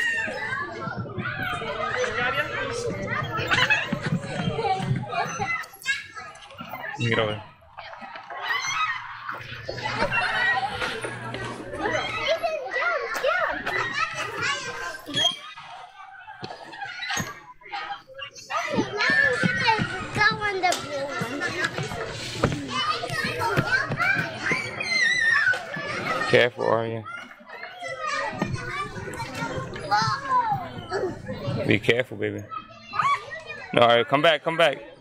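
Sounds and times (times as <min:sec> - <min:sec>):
children playing and calling out: 0:00.0 - 0:31.8, 0:32.4 - 0:35.0.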